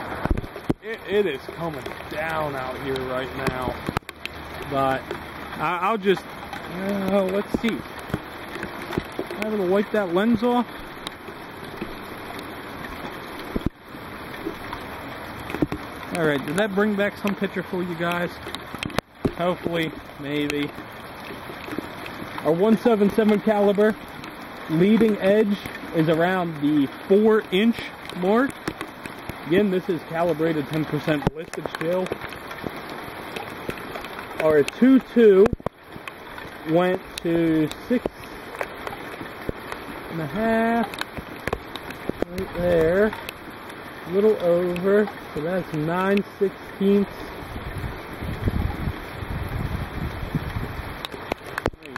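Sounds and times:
heavy rain: 0:00.0 - 0:51.9.

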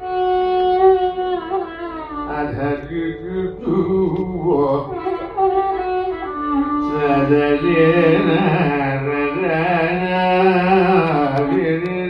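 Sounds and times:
violin slow melody: 0:00.0 - 0:12.0
man singing: 0:02.3 - 0:05.4, 0:06.8 - 0:12.0.

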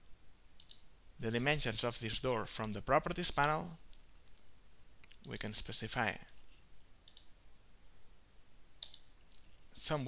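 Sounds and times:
computer mouse clicking: 0:00.6 - 0:00.9, 0:07.0 - 0:07.4, 0:08.8 - 0:09.5.

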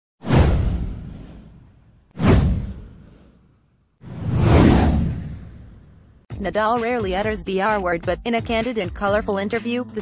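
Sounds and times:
whoosh sound effect: 0:00.2 - 0:06.1.

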